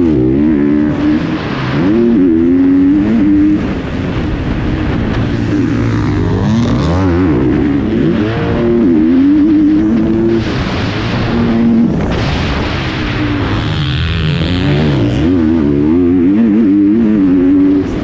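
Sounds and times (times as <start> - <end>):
motocross bike engine revving: 0.0 - 18.0.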